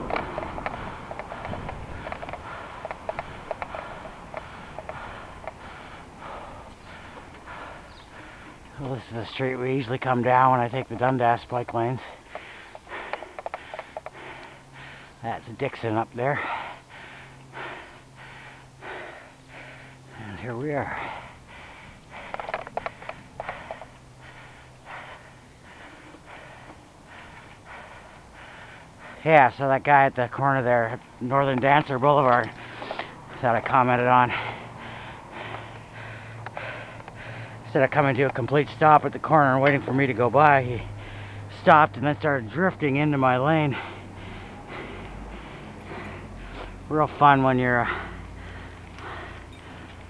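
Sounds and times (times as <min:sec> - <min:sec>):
wind rumble on microphone: 0:00.0 - 0:06.7
person breathing hard: 0:00.0 - 0:08.7, 0:11.9 - 0:15.2, 0:16.1 - 0:29.3, 0:32.3 - 0:37.7, 0:40.8 - 0:41.6, 0:43.1 - 0:50.0
road noise: 0:00.0 - 0:50.0
light clicks: 0:10.9 - 0:14.6.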